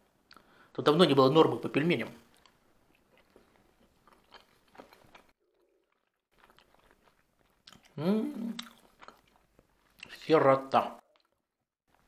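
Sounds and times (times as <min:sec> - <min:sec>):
chewing dumpling: 0:02.0 - 0:10.3, 0:11.0 - 0:12.0.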